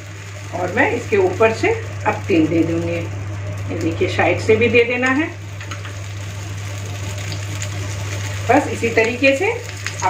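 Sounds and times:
batter sizzling in oil: 0.0 - 10.0.

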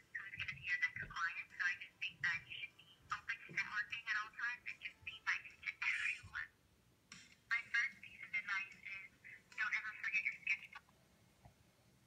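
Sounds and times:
tinny voice from small speaker: 0.0 - 6.6, 7.5 - 10.9.

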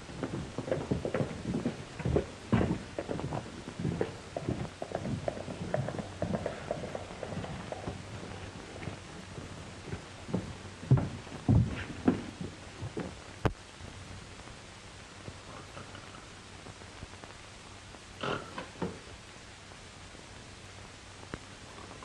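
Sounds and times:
footsteps: 0.0 - 13.6
horse hooves clopping on dirt: 0.0 - 13.6
film soundtrack hiss: 0.0 - 22.0.

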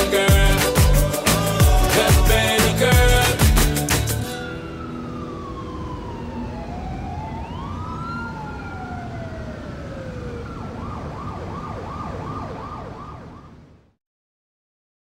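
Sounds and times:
wailing sirens: 4.2 - 13.8
siren yelp: 4.2 - 13.9.

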